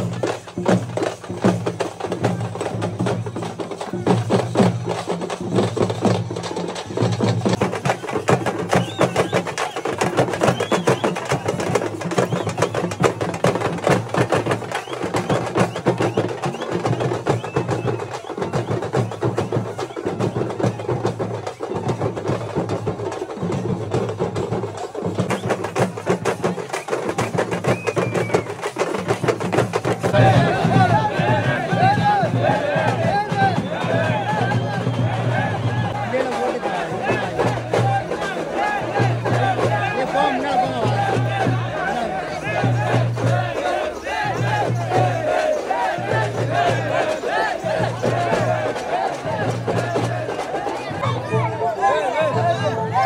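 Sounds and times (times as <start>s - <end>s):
drum band playing fast: 0.0s - 53.0s.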